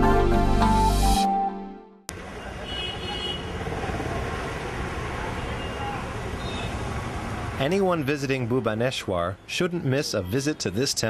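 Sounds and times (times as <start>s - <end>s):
low outdoor background noise: 2.1s - 11.0s.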